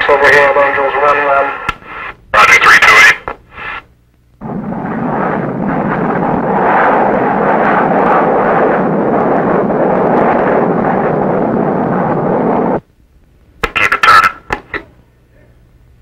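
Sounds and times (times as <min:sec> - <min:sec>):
jet engine noise: 0:00.0 - 0:12.9, 0:13.6 - 0:14.9.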